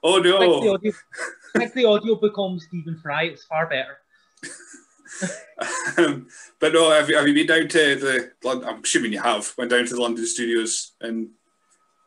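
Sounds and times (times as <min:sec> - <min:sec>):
men laughing: 0:04.4 - 0:06.9.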